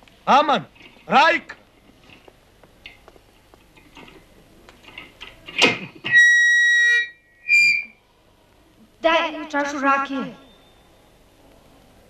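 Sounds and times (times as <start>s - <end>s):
microphone feedback squeal: 6.0s - 8.0s, 10.3s - 11.2s.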